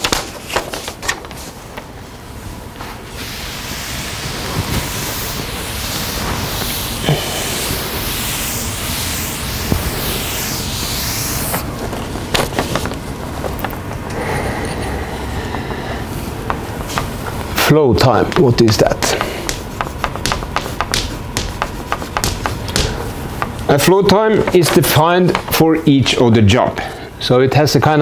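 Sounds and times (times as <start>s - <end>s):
cloth wiping chalkboard: 2.8s - 13.0s, 15.8s - 26.2s
chalk tapping and scratching: 3.8s - 11.7s, 16.5s - 17.2s, 18.0s - 23.6s, 24.4s - 25.6s.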